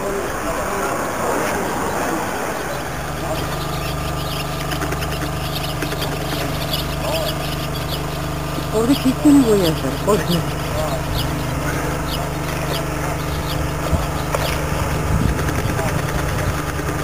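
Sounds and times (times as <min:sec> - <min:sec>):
broad rushing noise: 0:00.0 - 0:17.0
engine idling hum: 0:00.0 - 0:17.0.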